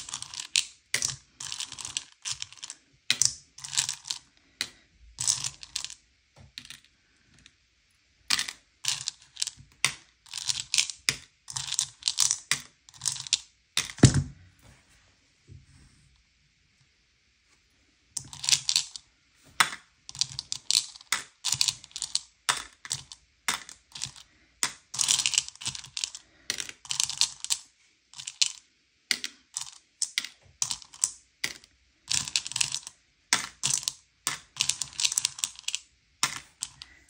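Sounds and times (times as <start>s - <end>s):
candies clicking in a bowl: 0.0s - 4.3s, 5.2s - 6.0s, 8.3s - 14.0s, 18.2s - 19.0s, 19.6s - 27.6s, 28.2s - 37.0s.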